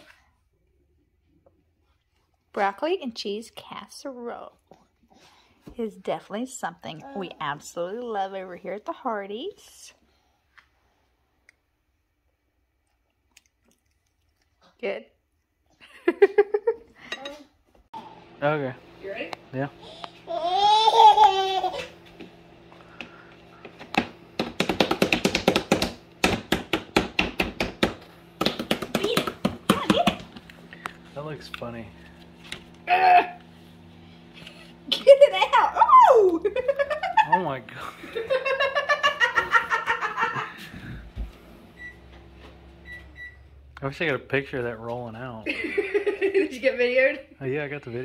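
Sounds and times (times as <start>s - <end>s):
baby crying: 20.3s - 22.0s
hands tapping plastic bowl: 23.9s - 30.4s.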